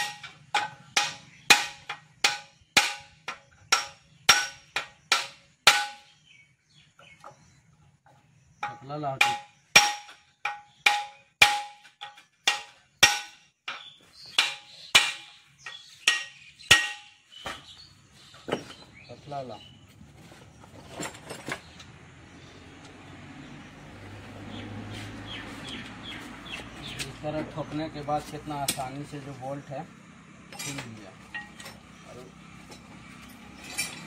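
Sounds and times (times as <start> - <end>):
hammer striking steel: 0.0 - 6.1, 8.6 - 17.6.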